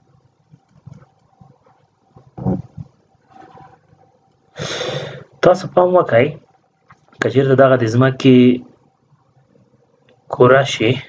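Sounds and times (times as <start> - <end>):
faint room noise: 0.0 - 11.0
person's non-speech vocal sound: 2.2 - 3.6
person breathing in: 4.6 - 5.3.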